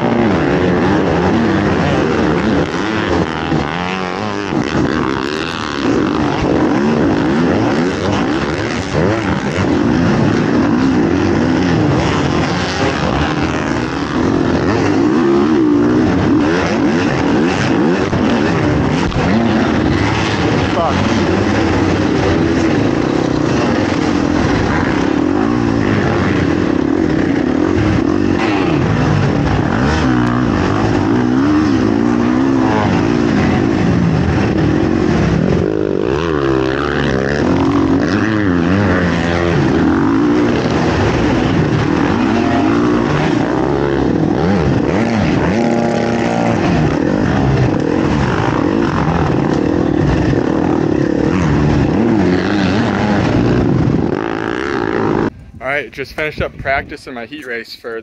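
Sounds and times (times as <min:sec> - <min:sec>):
dirt bike engines revving: 0:00.0 - 0:58.0.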